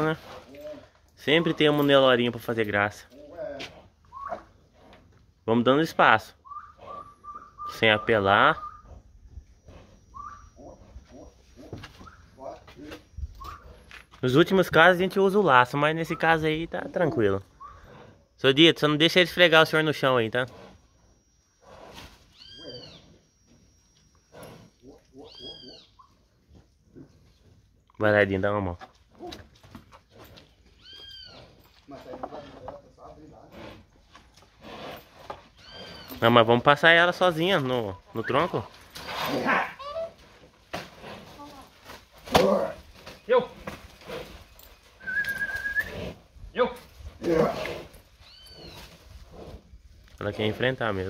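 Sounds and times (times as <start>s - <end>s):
cow calling: 3.2s - 4.7s, 5.7s - 14.0s, 19.4s - 26.3s, 30.7s - 33.6s, 34.6s - 40.3s, 45.0s - 46.2s, 47.2s - 49.4s.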